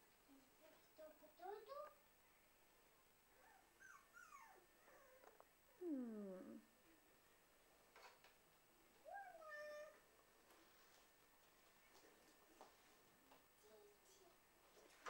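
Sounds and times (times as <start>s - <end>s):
puppy whimpering: 3.4s - 6.6s, 9.1s - 10.0s.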